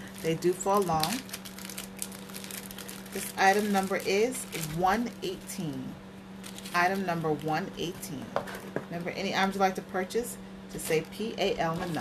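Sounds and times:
low steady hum: 0.0 - 12.0
cardboard crinkling: 0.1 - 5.0, 6.4 - 7.5.

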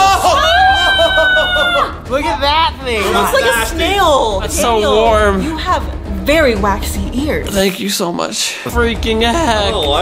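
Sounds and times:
person screaming in disgust: 0.0 - 2.0.

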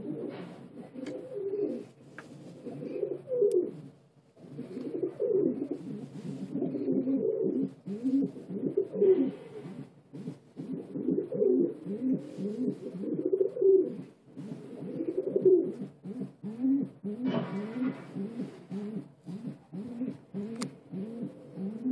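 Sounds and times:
pigeons cooing: 0.0 - 21.9
rustling noise: 0.1 - 4.8, 5.6 - 8.4, 11.9 - 13.3
sharp click: 20.6 - 20.8.

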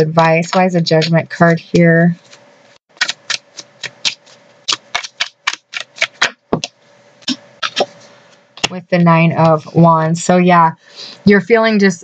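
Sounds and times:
cards being shuffled: 2.2 - 8.8.

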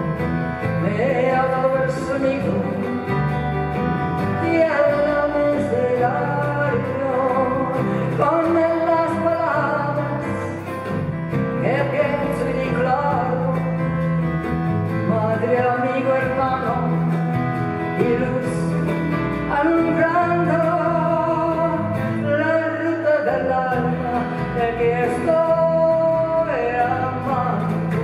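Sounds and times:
acoustic guitar: 0.0 - 28.0
woman singing a slow folk song: 0.2 - 14.2, 14.8 - 28.0.

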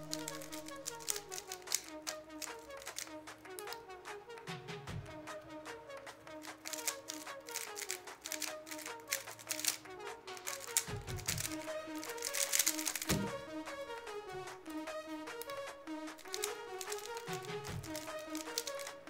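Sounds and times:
puzzle cube clicking: 0.0 - 3.8, 6.4 - 14.5, 15.3 - 19.0
typing on laptop keyboard: 0.0 - 3.8, 6.4 - 13.5, 14.1 - 19.0
background music: 0.0 - 19.0.

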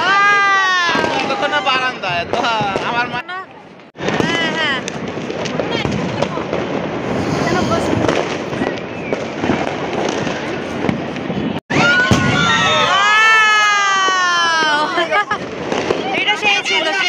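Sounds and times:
whistling fireworks: 0.0 - 3.2, 4.0 - 17.0
fireworks crackling and popping: 0.2 - 17.0.

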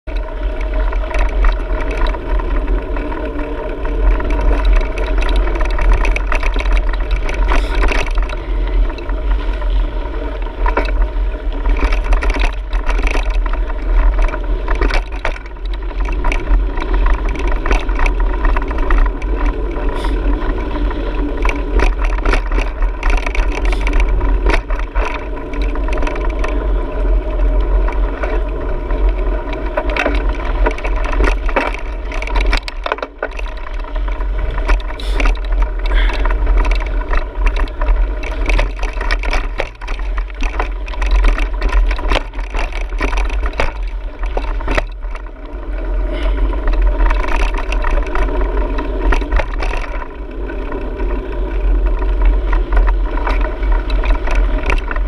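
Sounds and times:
bike clicks and rattles: 0.0 - 55.0
bike tyre rumble on dirt: 0.0 - 55.0
wind buffeting microphone: 0.0 - 55.0.

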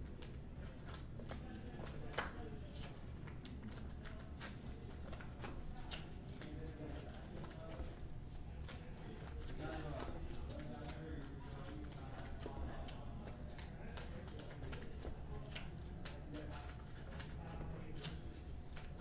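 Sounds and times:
cards and plastic sleeves handled: 0.2 - 7.9, 8.6 - 19.0.

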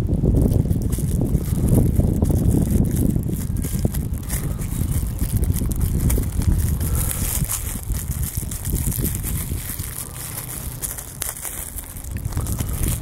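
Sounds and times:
plastic wrapper crinkling: 0.0 - 13.0
wind buffeting microphone: 0.0 - 13.0.

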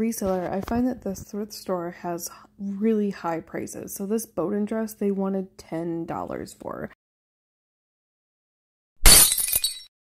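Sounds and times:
glass shards clinking: 9.0 - 9.9
glass shattering: 9.0 - 9.9.

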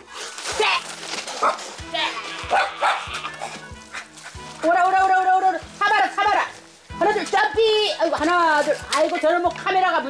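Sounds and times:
background music: 0.0 - 10.0
small dog barking: 2.5 - 3.2.

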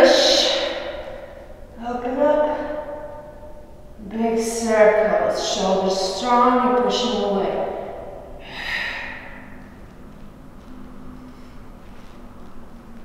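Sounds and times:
woman's voice: 0.0 - 1.1, 1.8 - 2.8, 4.0 - 9.3
woman breathing out: 8.2 - 9.7.

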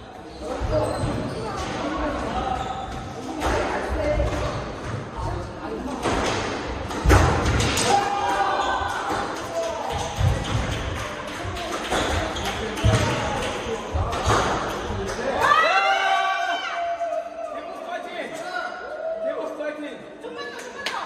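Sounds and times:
squash ball knocks and thuds: 6.0 - 7.9.

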